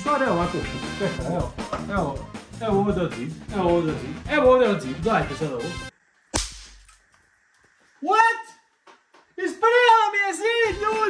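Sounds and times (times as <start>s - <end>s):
snap pop crack: 6.3s - 7.0s.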